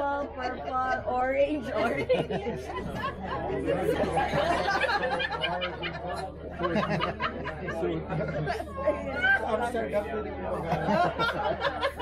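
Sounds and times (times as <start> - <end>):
group conversation: 0.0 - 12.0.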